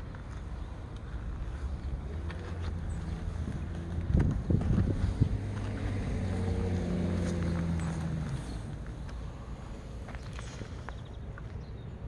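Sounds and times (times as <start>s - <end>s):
wind buffeting microphone: 3.3s - 6.4s.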